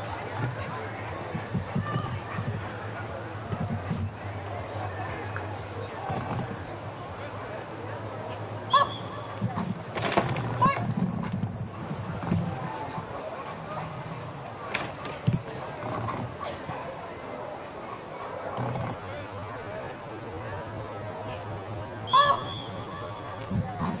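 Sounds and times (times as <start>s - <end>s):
outdoor background noise: 0.0s - 24.0s.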